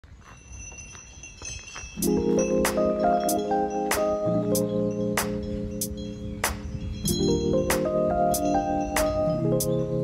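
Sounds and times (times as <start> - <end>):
high chime ringing: 0.2 - 10.0.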